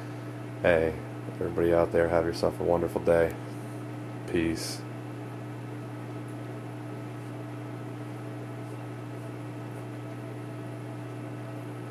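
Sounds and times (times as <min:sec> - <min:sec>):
aquarium pumps humming: 0:00.0 - 0:11.9.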